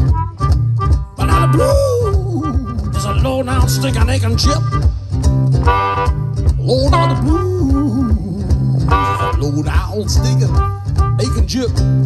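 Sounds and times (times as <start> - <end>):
harmonica solo: 0.0 - 11.4
acoustic guitar boogie rhythm: 0.0 - 12.0.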